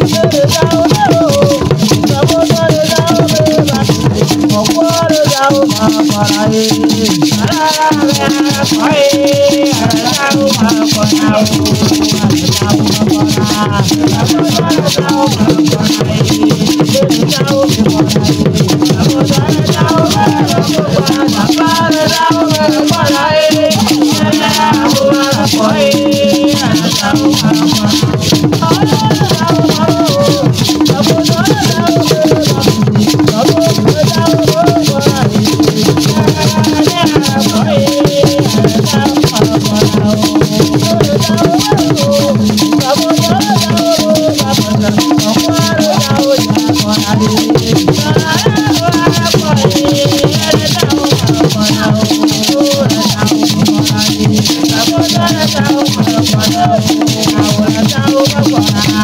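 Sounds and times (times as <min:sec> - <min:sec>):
group of voices singing: 0:00.0 - 0:59.0
shaken rattles: 0:00.0 - 0:59.0.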